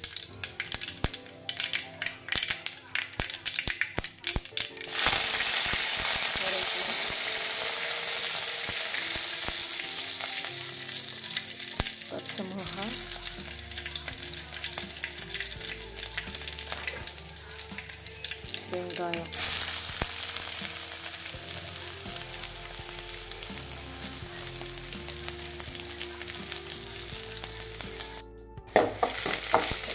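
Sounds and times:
hot oil crackling and popping: 0.0 - 29.9
loud steady sizzle: 0.0 - 29.9.

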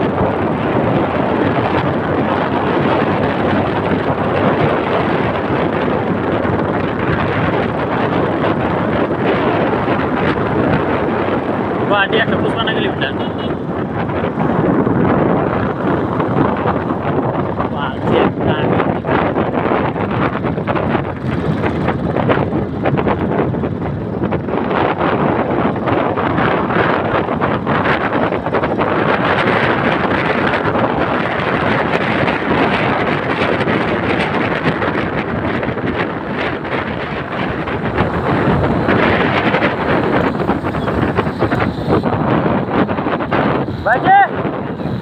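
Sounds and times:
road noise: 0.0 - 45.0
wind buffeting microphone: 0.0 - 45.0
motorcycle engine: 12.9 - 45.0.

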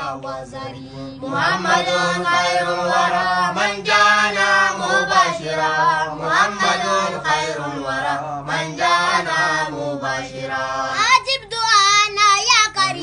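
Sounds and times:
young voices chanting: 0.0 - 13.0.

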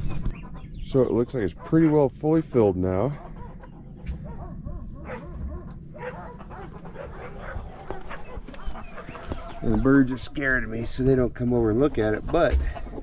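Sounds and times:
chickens and poultry calling: 0.0 - 13.0.

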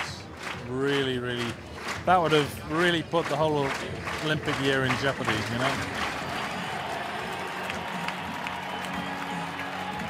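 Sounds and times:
background music: 0.0 - 10.0
crowd applauding: 0.0 - 10.0.

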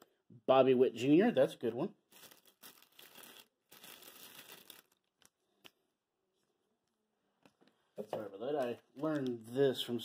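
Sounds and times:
plastic card sleeve rustling: 2.1 - 5.8.

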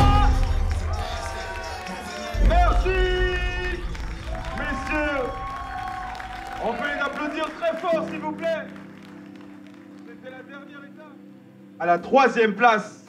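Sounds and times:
person singing: 0.0 - 4.1
bass beat: 0.0 - 6.2.

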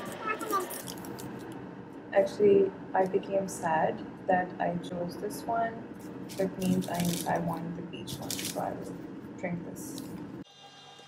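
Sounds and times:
tea sachet crinkling: 0.5 - 1.6, 6.0 - 9.0, 9.8 - 10.4.

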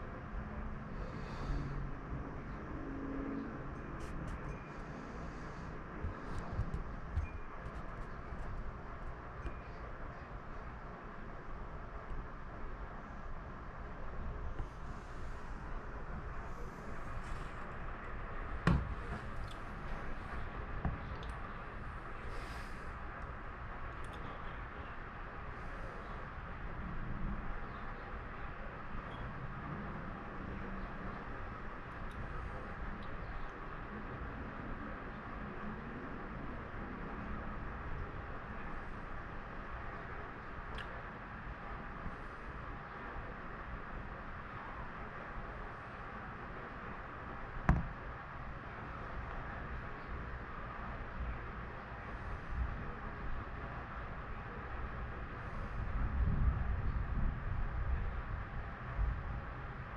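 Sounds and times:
outdoor background noise: 0.0 - 59.9.

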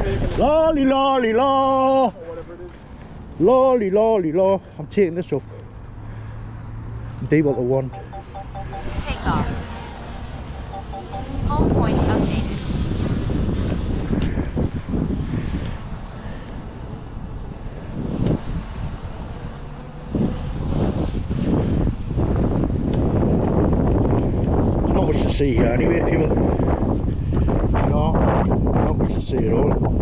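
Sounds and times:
quadcopter drone lifting off: 7.4 - 23.4
wind buffeting microphone: 10.9 - 30.0.

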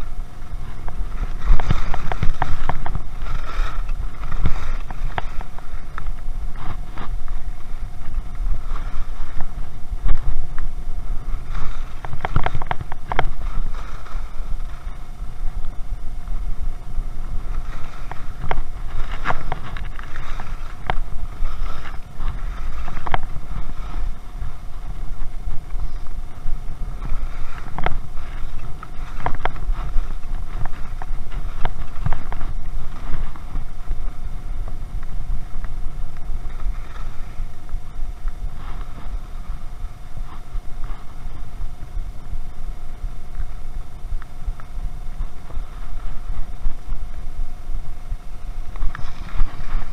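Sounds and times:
skis sliding on snow: 0.0 - 49.9
wind rumbling on microphone: 0.0 - 49.9.

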